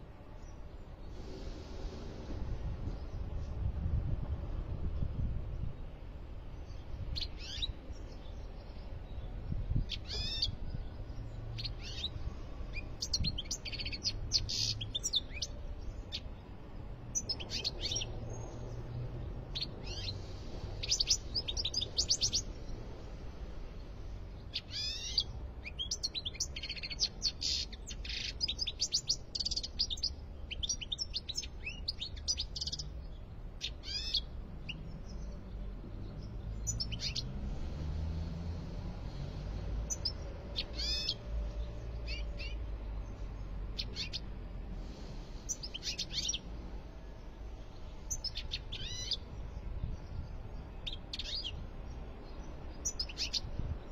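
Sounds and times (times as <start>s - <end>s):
goldfinch twittering song: 6.6s - 16.4s, 24.4s - 37.3s, 39.8s - 41.2s, 47.8s - 51.6s, 52.2s - 53.6s.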